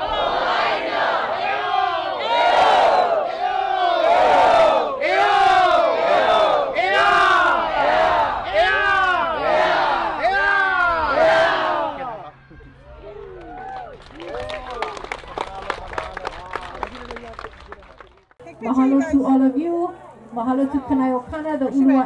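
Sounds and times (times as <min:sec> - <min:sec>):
crowd chanting and shouting: 0:00.0 - 0:12.8.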